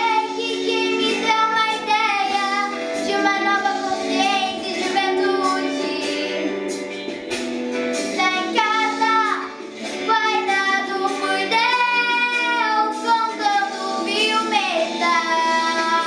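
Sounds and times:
girl singing: 0:00.0 - 0:06.7, 0:07.9 - 0:16.0
instrumental backing track: 0:00.0 - 0:16.0.

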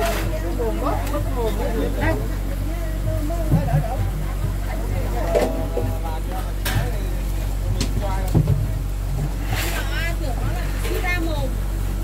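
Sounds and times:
boat motor humming: 0:00.0 - 0:12.0
people talking: 0:00.0 - 0:12.0.

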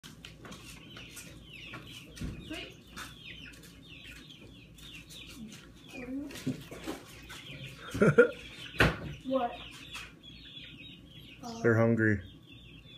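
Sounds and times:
nestling birds chirping: 0:00.0 - 0:12.9.

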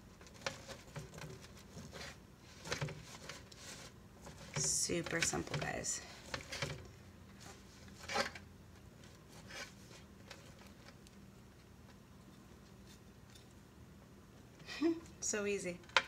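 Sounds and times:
fork scraping squash: 0:00.3 - 0:06.7.

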